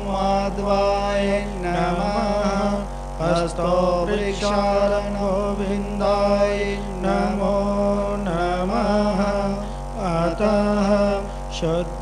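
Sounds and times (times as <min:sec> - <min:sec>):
person chanting melodically: 0:00.0 - 0:12.0
steady held drone: 0:00.0 - 0:12.0.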